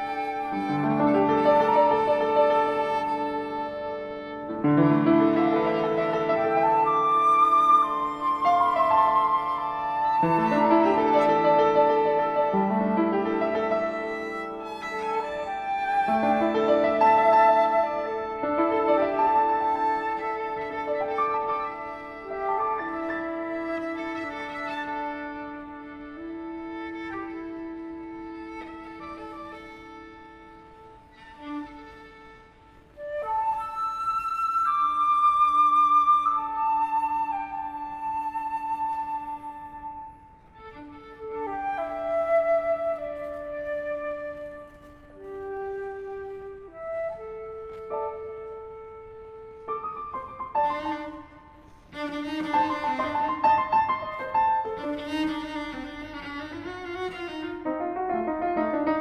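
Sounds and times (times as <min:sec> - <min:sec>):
cello long held notes: 0:00.0 - 0:34.4, 0:40.4 - 0:59.0
flute melody: 0:00.0 - 0:59.0
piano playing: 0:00.0 - 0:59.0.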